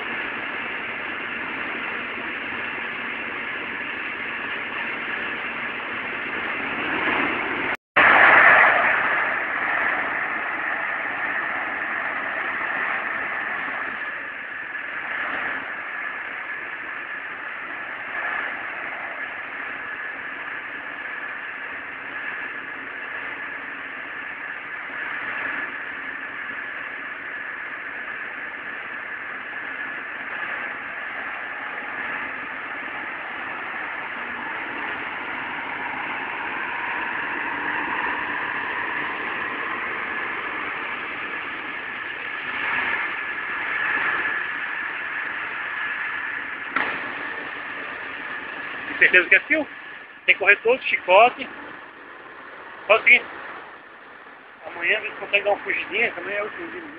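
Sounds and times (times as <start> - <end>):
distant diesel engine running: 0.0 - 56.9
sharp knock: 46.7 - 47.2.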